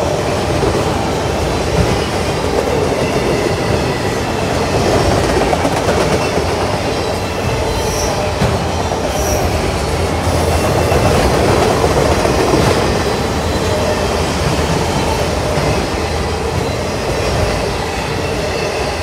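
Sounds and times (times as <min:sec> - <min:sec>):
train wheels rumbling on rails: 0:00.0 - 0:19.0
high wheel squeals: 0:00.3 - 0:19.0.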